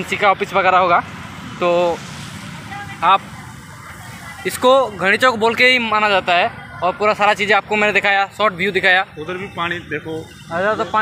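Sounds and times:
city road traffic hum: 0.0 - 11.0.

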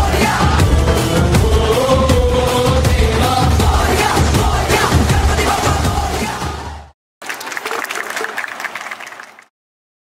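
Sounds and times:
song music: 0.0 - 6.7
audience applauding: 7.2 - 9.5.

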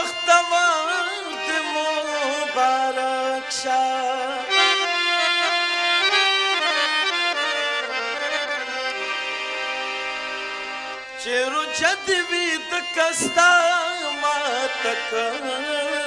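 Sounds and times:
man singing: 0.0 - 5.6, 11.2 - 16.0
harmonium playing held notes: 0.0 - 16.0.

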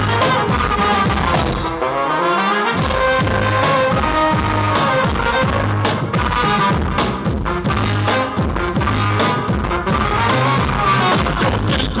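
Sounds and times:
bass drum: 0.0 - 1.8, 2.8 - 12.0
trumpet and saxophones melody: 0.0 - 12.0.

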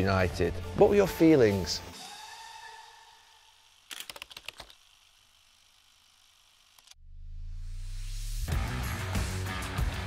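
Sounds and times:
flurry of sharp clicks: 3.9 - 4.9.

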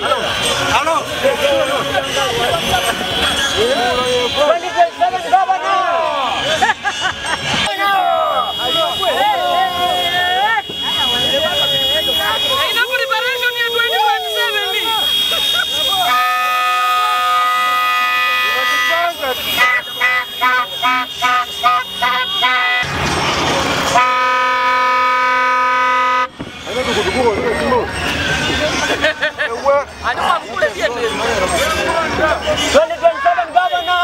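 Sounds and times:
people shouting: 0.0 - 6.8, 7.5 - 22.9, 30.6 - 34.0
vehicle horns honking: 0.0 - 30.0, 30.6 - 34.0.

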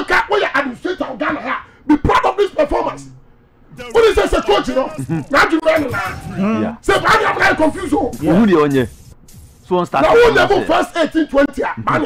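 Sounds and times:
person talking loudly: 9.9 - 12.0.

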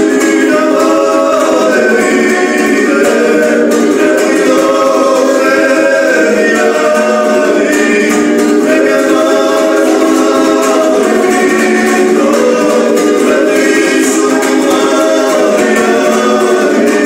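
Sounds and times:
men singing folk song: 0.0 - 17.0
strummed lute: 0.0 - 17.0.

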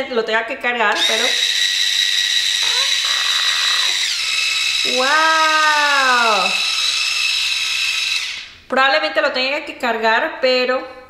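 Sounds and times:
high-pitched motor whine: 1.0 - 8.5.

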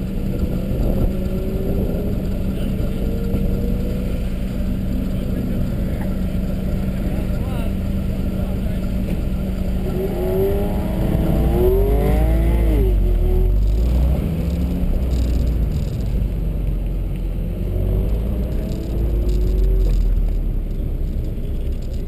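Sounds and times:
wind rumble on microphone: 0.0 - 4.2
car engine accelerating hard: 0.0 - 22.0.

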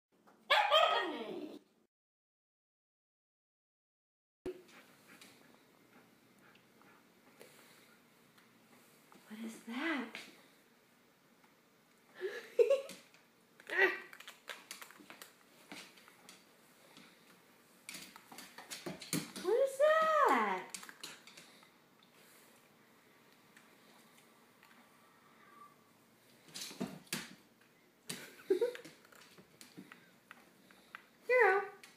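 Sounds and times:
dog calling: 0.5 - 1.4.

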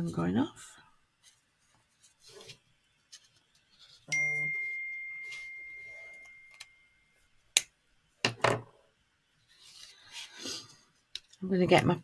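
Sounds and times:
paper and pen rustling: 1.2 - 4.1, 9.4 - 11.8
chime ringing: 4.1 - 7.1.

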